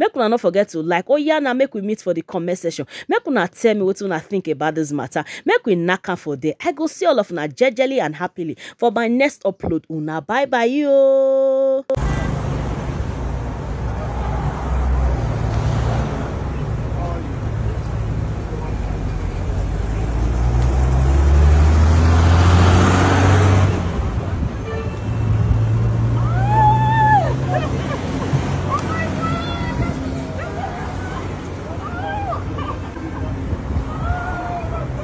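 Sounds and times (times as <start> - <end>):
traffic rumble: 12.0 - 35.0
vehicle passing: 12.0 - 35.0.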